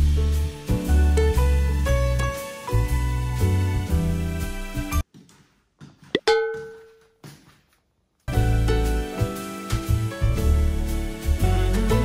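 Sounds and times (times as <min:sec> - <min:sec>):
background music: 0:00.0 - 0:05.0, 0:08.3 - 0:12.0
bell-like ding: 0:06.2 - 0:07.0.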